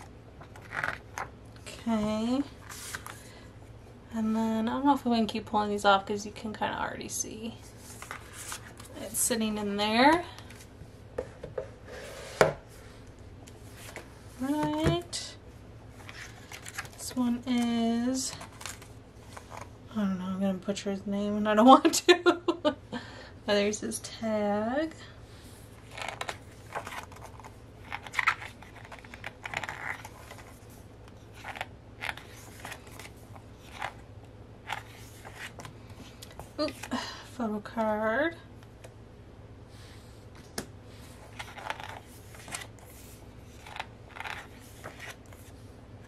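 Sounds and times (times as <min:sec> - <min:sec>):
book pages turning: 0:00.0 - 0:01.3, 0:02.6 - 0:03.3, 0:07.7 - 0:09.0, 0:13.6 - 0:14.8, 0:15.9 - 0:17.1, 0:18.3 - 0:19.7, 0:25.8 - 0:34.0, 0:34.6 - 0:36.9, 0:40.4 - 0:45.6
book knocking on tabletop: 0:12.4 - 0:12.6
paper rustling: 0:25.8 - 0:34.0, 0:41.0 - 0:45.6.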